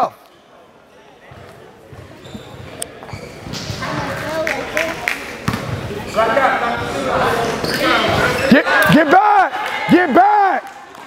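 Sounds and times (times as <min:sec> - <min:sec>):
voices in echoing hall: 0:00.0 - 0:11.0
basketball bouncing on gym floor: 0:05.4 - 0:05.8.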